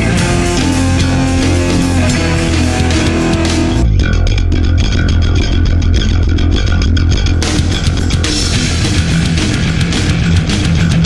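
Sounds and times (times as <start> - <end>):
bass guitar riff: 0.0 - 11.0
distorted guitars: 0.0 - 11.0
drum hits: 0.0 - 11.0.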